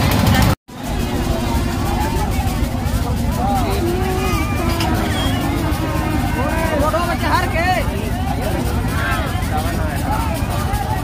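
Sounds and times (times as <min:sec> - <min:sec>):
people talking and calling out: 0:00.2 - 0:11.0
steady low rumble: 0:00.7 - 0:11.0.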